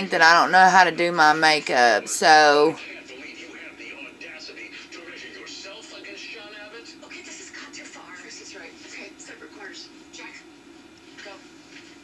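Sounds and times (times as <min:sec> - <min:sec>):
television music: 0:00.0 - 0:12.0.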